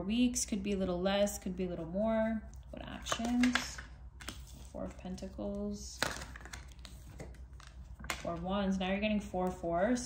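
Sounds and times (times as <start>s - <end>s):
cards rustling: 3.0s - 8.3s.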